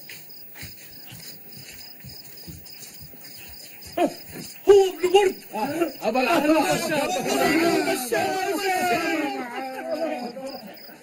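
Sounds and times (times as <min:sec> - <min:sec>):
crickets chirping: 0:00.0 - 0:11.0.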